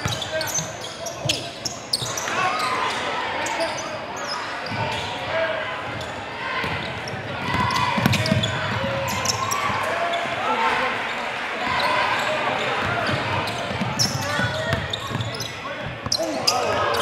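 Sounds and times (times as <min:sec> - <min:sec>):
sneakers squeaking on hardwood: 0:00.0 - 0:02.8, 0:05.9 - 0:10.4, 0:12.6 - 0:17.0
crowd voices and shouts: 0:00.0 - 0:17.0
basketball bouncing: 0:07.5 - 0:08.5.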